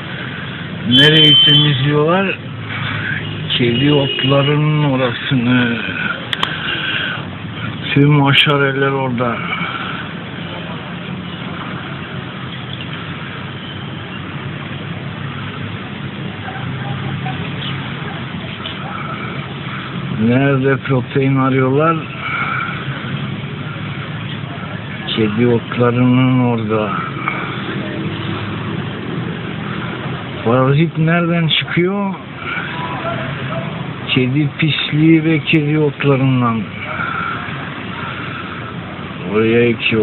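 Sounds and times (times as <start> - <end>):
road traffic hum: 0.0 - 40.0.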